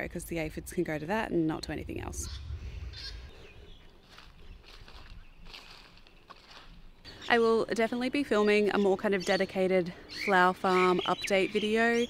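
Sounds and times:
faint bird calls: 2.2 - 5.6.

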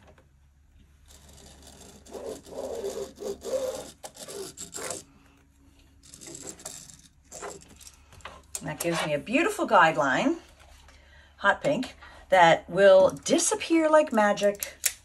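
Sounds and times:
marking pen scratching on fabric: 1.1 - 5.1.

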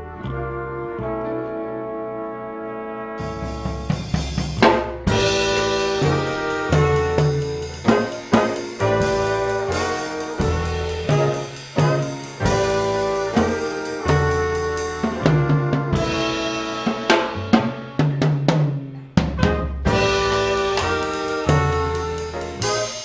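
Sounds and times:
jazz ensemble playing chords: 0.0 - 23.0
sharp drum hits and fills: 3.5 - 23.0.

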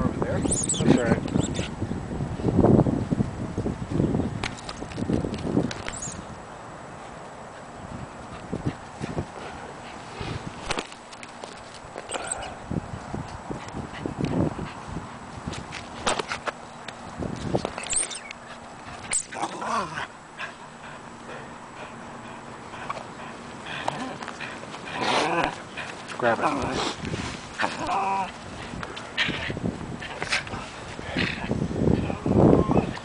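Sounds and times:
dog whining: 0.4 - 1.7, 12.1 - 12.6, 17.8 - 18.4.

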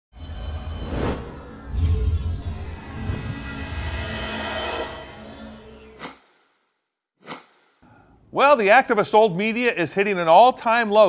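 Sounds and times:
low rumble: 0.2 - 6.0
ringing synth chord: 0.2 - 6.0
brief swish: 5.9 - 6.4, 7.2 - 7.8.

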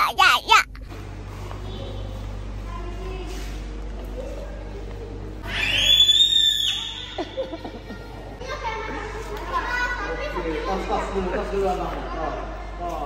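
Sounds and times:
child squealing: 5.4 - 7.3
young children chattering: 6.7 - 13.0.

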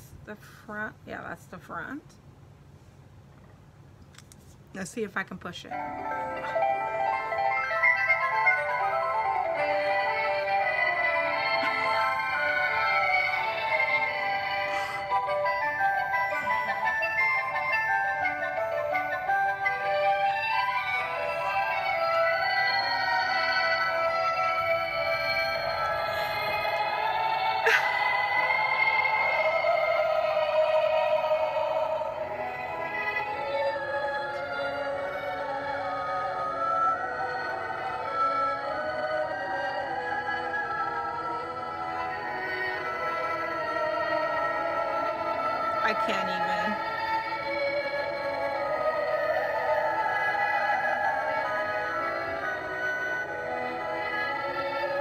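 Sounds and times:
tinny melody from small speaker: 4.8 - 55.0.

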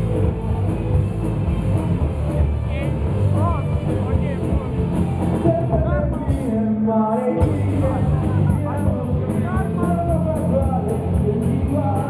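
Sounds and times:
rock band playing live: 0.0 - 6.7, 7.4 - 12.0
person singing: 5.4 - 12.0.

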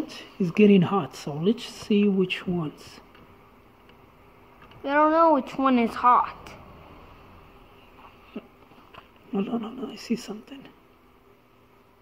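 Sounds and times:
man speaking: 9.3 - 10.8.

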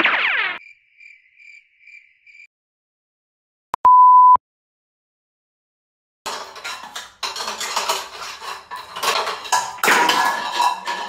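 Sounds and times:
crickets chirping: 0.6 - 2.5.

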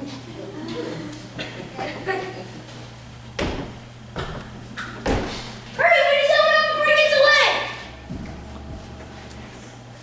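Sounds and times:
footsteps on wooden stage: 3.3 - 5.8, 8.0 - 9.3.

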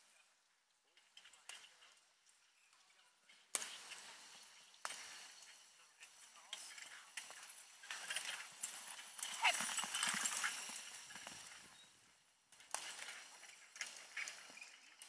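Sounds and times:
horse hooves trotting: 3.6 - 15.0.

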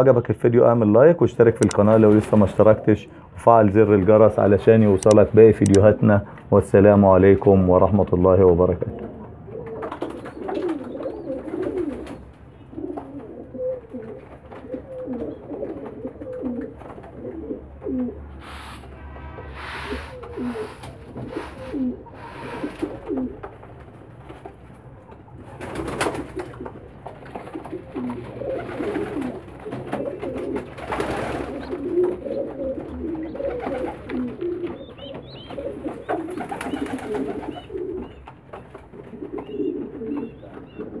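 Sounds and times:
pigeons cooing: 8.7 - 18.8, 19.6 - 41.0
short noisy bursts: 18.4 - 22.9.

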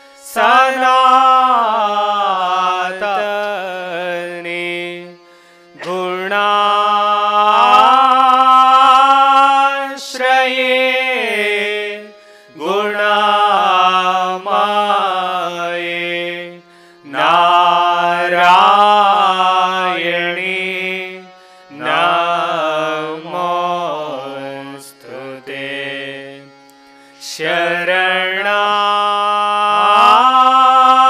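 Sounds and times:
person singing devotional chant: 0.0 - 31.0.

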